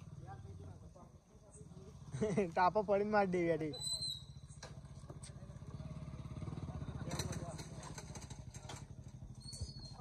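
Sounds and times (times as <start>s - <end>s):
small engine running: 4.2s - 10.0s.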